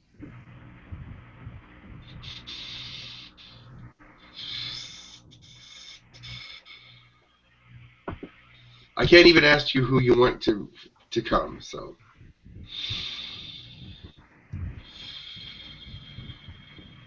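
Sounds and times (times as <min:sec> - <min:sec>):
faint low hum: 0:00.0 - 0:17.0
man breathing deeply: 0:00.2 - 0:07.4, 0:12.2 - 0:17.0.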